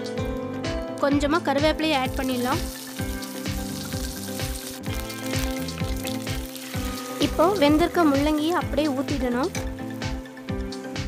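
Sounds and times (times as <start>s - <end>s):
background music with beat: 0.0s - 11.0s
spices sizzling in hot oil: 1.4s - 11.0s.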